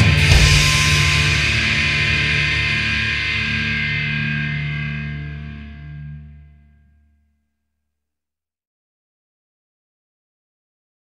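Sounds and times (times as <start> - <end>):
distorted electric guitar chord: 0.0 - 7.0.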